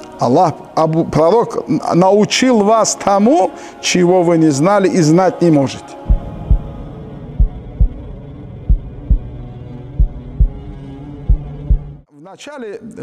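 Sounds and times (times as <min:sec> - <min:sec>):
steady low hum: 0:06.0 - 0:12.0
heartbeat double thumps: 0:06.1 - 0:12.0.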